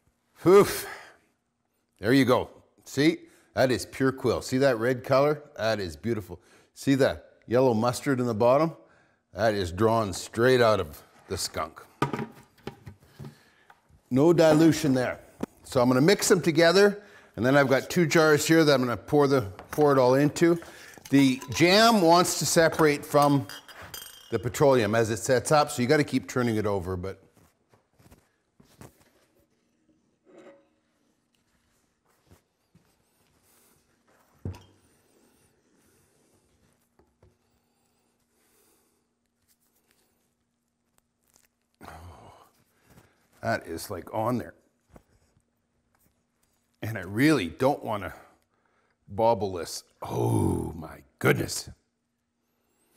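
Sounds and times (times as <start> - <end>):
plastic bucket knocks: 12.0 - 13.4.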